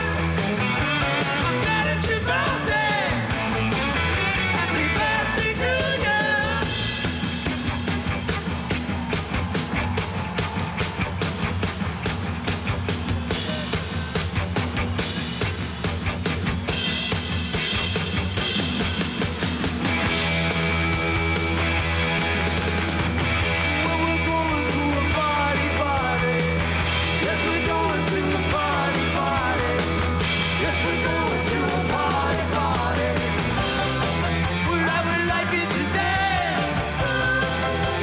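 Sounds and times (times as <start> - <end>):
fast drumming: 0.0 - 38.0
rock band playing: 0.0 - 38.0
person singing: 27.2 - 33.7.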